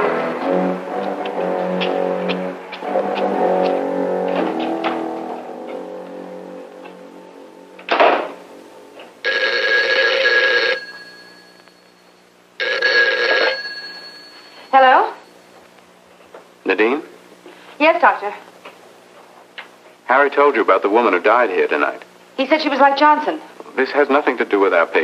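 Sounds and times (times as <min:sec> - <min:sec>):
brass-led orchestral music: 0:00.0 - 0:05.6
telephone bell ringing: 0:09.2 - 0:15.4.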